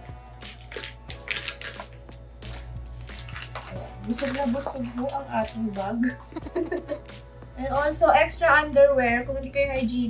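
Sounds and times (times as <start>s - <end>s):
soft background music: 0.0s - 10.0s
plastic packet crinkling: 0.5s - 5.8s.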